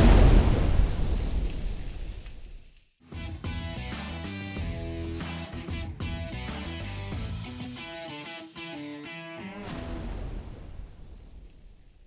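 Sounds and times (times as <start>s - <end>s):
noisy hit with deep rumble: 0.0s - 2.0s, 9.6s - 11.5s.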